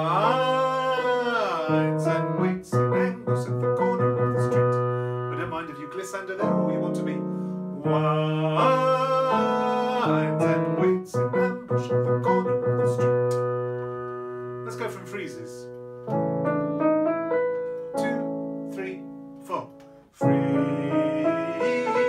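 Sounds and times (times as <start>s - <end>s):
sustained piano chords: 0.0s - 22.0s.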